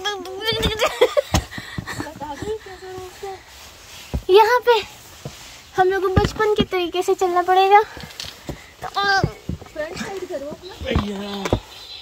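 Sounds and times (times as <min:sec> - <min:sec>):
footsteps on rock floor: 0:00.0 - 0:12.0.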